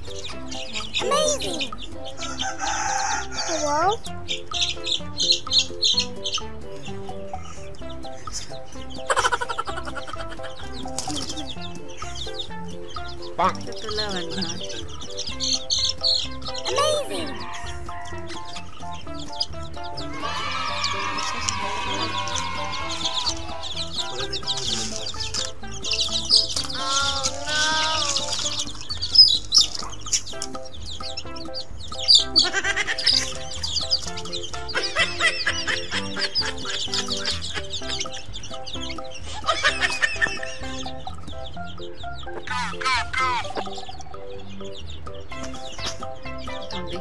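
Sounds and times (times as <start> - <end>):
background music: 0.0 - 47.0
chickens clucking: 0.0 - 47.0.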